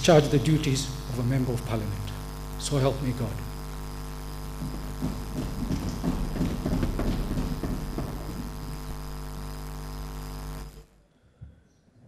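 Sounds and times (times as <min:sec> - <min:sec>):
electrical mains hum: 0:00.0 - 0:11.8
rustling and knocks of movement: 0:04.4 - 0:09.2.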